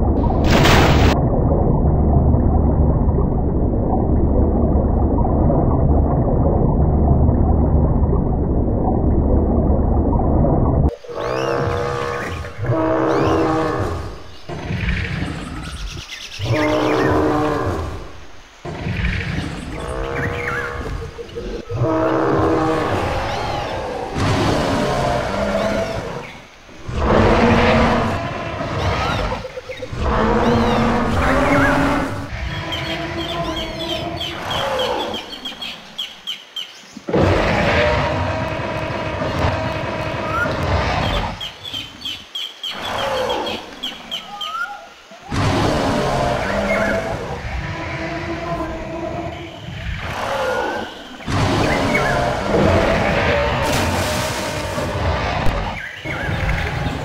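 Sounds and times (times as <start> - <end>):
dinosaur roaring and growling: 10.9 - 15.5, 16.4 - 35.3, 37.1 - 41.4, 45.2 - 57.0.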